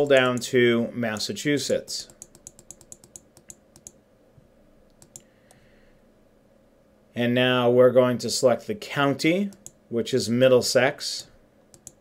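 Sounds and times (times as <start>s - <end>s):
computer mouse clicking: 1.7s - 4.0s, 4.9s - 5.6s, 9.5s - 9.8s, 11.7s - 12.0s.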